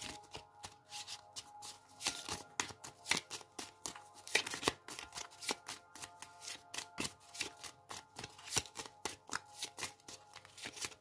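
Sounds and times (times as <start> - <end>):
cards being shuffled by hand: 0.0 - 11.0.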